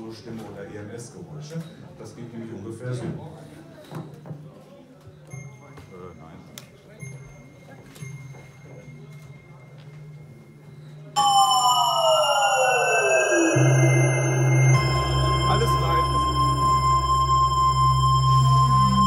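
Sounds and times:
low hum: 11.2s - 19.0s
synthesizer sustained tone: 11.2s - 19.0s.

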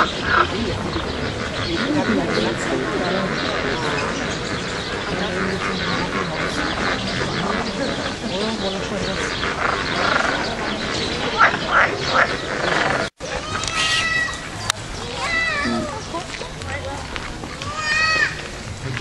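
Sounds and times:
crowd talking: 0.0s - 19.0s
short loud calls: 13.4s - 14.5s.

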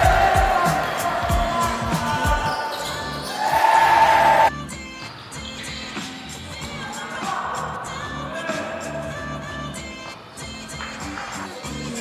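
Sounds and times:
game noise in hall: 0.0s - 6.1s.

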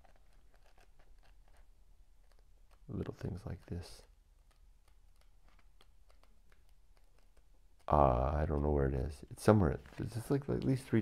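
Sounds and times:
pages ticking: 0.0s - 11.0s
paper rustling: 0.0s - 11.0s.

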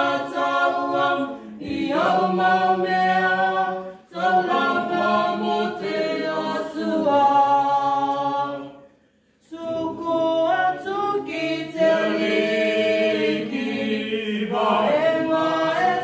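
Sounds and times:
group singing unaccompanied: 0.0s - 16.0s.

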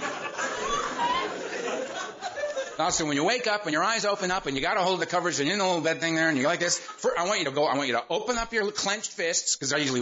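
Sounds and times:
audience laughing and chattering: 0.0s - 2.9s.

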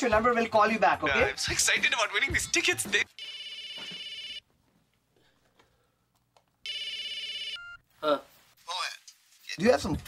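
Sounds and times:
phone warbling ring: 3.2s - 4.4s.

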